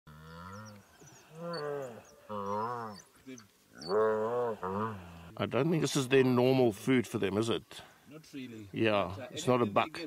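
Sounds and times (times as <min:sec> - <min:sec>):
hippo calf bawling: 0:00.2 - 0:03.1, 0:03.8 - 0:05.4
wild dogs chirping: 0:00.3 - 0:05.4.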